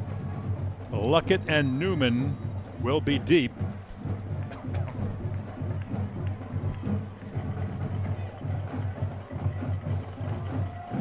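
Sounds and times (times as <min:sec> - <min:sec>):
drums beating fast: 0:01.2 - 0:11.0.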